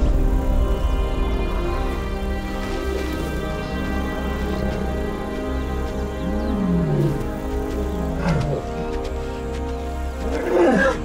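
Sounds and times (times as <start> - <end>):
background music: 0.0 - 11.0
lion growling: 3.0 - 11.0.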